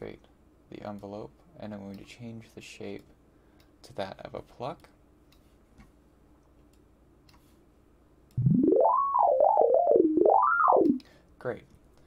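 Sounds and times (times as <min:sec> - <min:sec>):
synthesizer tone sliding in pitch: 0:08.4 - 0:11.0.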